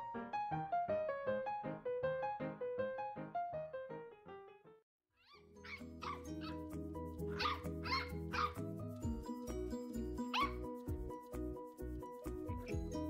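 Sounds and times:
puppy yipping: 5.2 - 6.6, 7.3 - 8.6, 10.3 - 10.7
background music with beat: 6.5 - 13.0.

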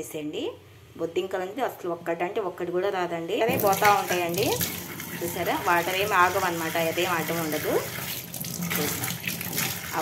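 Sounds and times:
tap water running into sink: 3.5 - 10.0.

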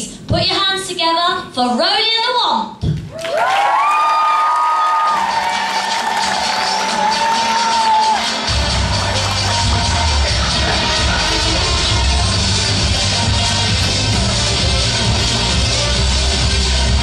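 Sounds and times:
audience cheering and whooping: 3.1 - 12.3
music with heavy bass beat: 5.1 - 17.0.

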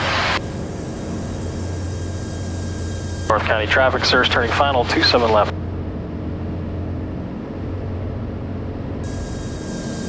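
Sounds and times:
steady high hiss: 0.0 - 3.9, 9.0 - 10.0
aircraft engine and propeller droning: 0.0 - 10.0.

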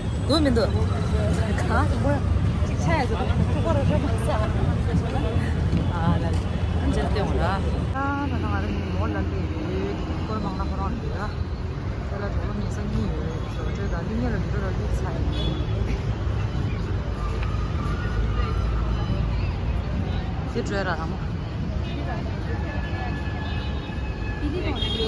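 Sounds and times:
street traffic rumbling: 0.0 - 25.0
people talking: 0.3 - 11.4.

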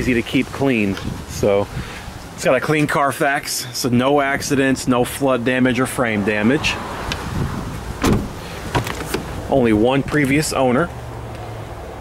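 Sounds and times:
door latch click: 8.0 - 9.2
car door shutting thump: 8.0 - 9.3.

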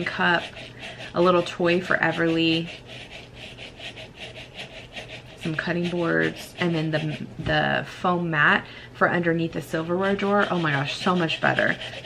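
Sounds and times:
nail file filing fingernails: 0.0 - 7.3.

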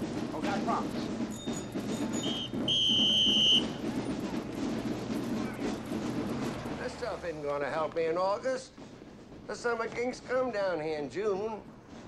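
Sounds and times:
street chatter: 0.0 - 10.3
shrill whistle blasts: 1.4 - 3.8.

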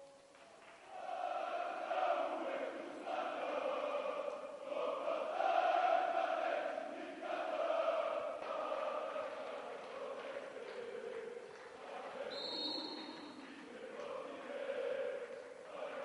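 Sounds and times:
fans chanting in unison: 0.6 - 16.0.

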